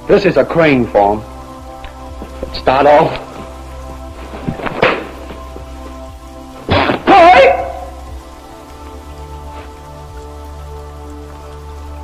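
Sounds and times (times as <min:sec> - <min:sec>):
film soundtrack hiss and hum: 0:00.0 - 0:12.0
soft foot and body thumps: 0:02.1 - 0:06.0.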